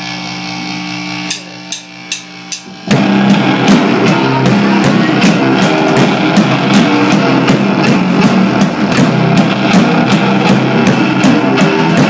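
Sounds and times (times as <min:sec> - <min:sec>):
drumstick clicks: 0:01.3 - 0:02.7
rock band playing loud: 0:02.0 - 0:12.0.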